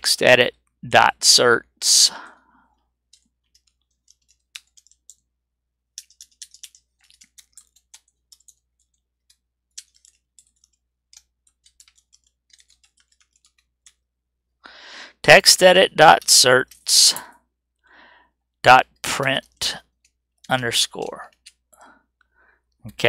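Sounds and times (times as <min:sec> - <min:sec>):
typing on computer keyboard: 0:03.0 - 0:05.3, 0:05.9 - 0:14.1.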